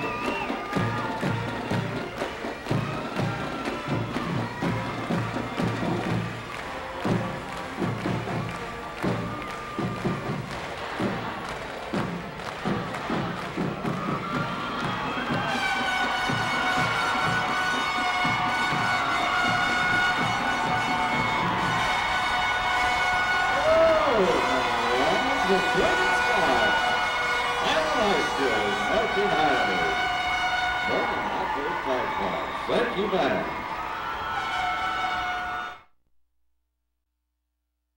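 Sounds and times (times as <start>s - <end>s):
marching band drum cadence: 0.0s - 35.5s
crowd shouting and cheering: 0.0s - 35.9s.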